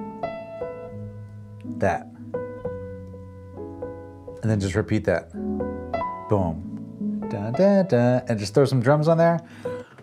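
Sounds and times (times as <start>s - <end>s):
solo piano chords: 0.0s - 10.0s.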